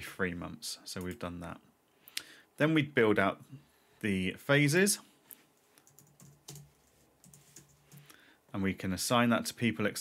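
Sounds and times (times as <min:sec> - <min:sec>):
keyboard keystrokes: 0:05.8 - 0:08.0.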